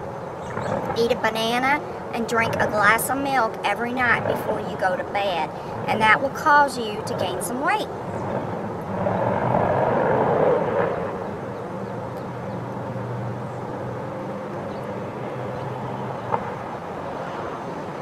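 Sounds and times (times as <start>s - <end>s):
distant engine drone: 0.0s - 18.0s.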